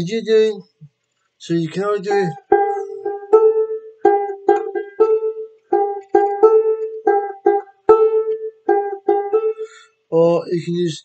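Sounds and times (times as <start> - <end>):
banjo-ukulele plucked riff: 1.5 - 10.4.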